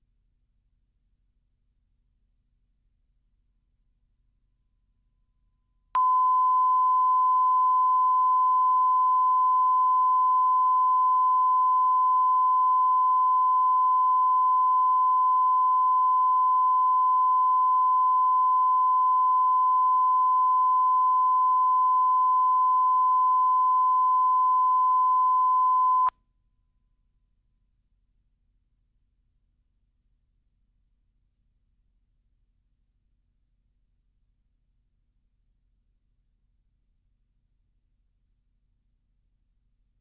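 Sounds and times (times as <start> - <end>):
steady test tone: 6.0 - 26.1.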